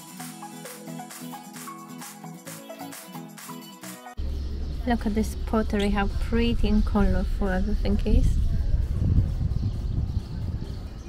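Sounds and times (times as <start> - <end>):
wind buffeting microphone: 4.2 - 11.0.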